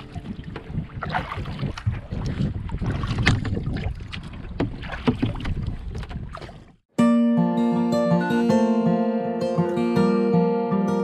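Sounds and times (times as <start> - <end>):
wind on microphone: 0.0 - 6.7
sharp splashes: 0.0 - 6.8
water lapping around kayak: 0.0 - 6.9.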